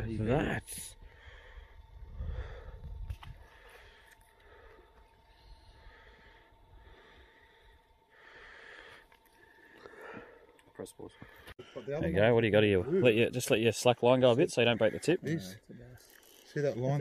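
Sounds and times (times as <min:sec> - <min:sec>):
person breathing softly: 0:00.8 - 0:12.0.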